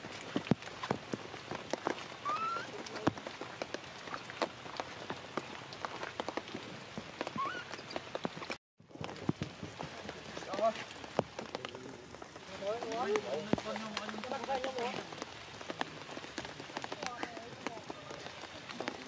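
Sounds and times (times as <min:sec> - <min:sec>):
rain pattering on leaves: 0:00.0 - 0:19.0
baby monkey crying: 0:02.2 - 0:02.7, 0:07.4 - 0:07.7.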